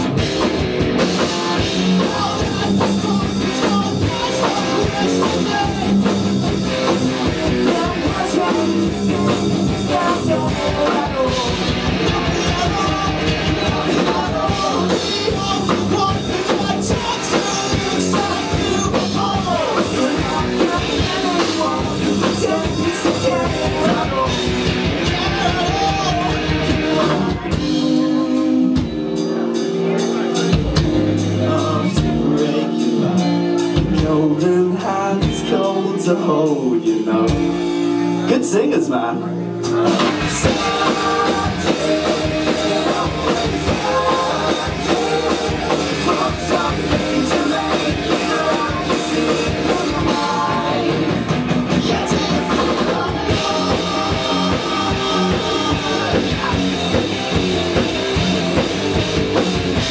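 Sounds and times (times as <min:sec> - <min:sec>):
drum kit: 0:00.0 - 0:38.6, 0:39.5 - 0:59.9
electric guitars: 0:00.0 - 0:59.9
person singing: 0:01.0 - 0:06.2, 0:06.8 - 0:29.5, 0:30.4 - 0:57.9.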